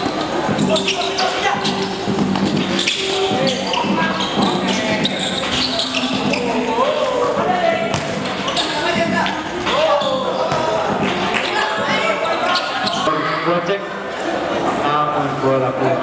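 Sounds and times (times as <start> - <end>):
voices shouting: 0.0 - 13.6
basketball bouncing on court: 7.4 - 9.4, 10.1 - 12.0.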